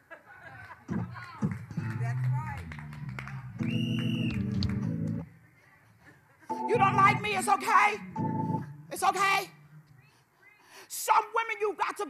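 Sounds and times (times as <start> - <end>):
organ playing a held chord: 6.5 - 8.7.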